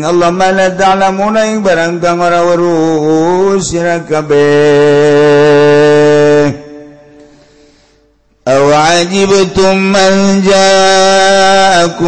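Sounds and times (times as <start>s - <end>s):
echo: 0.0s - 12.0s.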